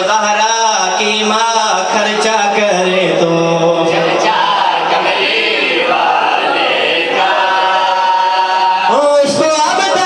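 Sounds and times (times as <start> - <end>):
men singing together: 0.0 - 8.9.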